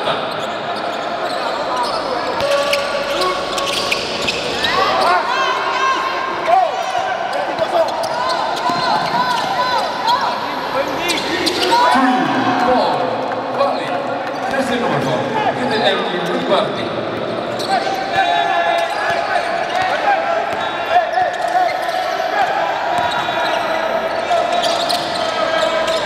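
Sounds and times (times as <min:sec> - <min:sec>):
sneakers squeaking: 0:00.0 - 0:12.7, 0:17.1 - 0:22.2, 0:22.9 - 0:26.0
murmur of voices: 0:00.0 - 0:26.0.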